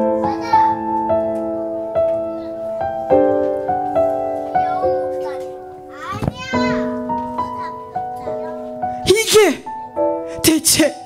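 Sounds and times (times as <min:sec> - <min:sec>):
keyboard chords music: 0:00.0 - 0:11.0
child calling out: 0:00.2 - 0:00.8, 0:02.3 - 0:02.6, 0:04.6 - 0:08.7.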